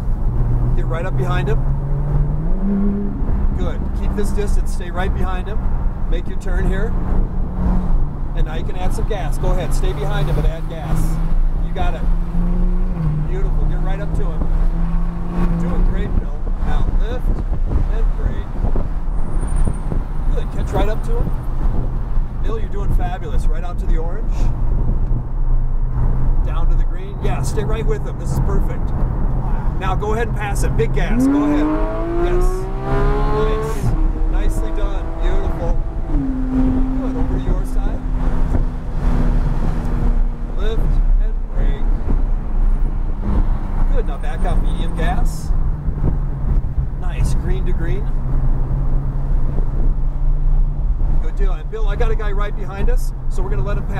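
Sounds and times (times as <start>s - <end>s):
car engine pulling under throttle: 0.0s - 53.9s
road and wind noise: 0.0s - 53.9s.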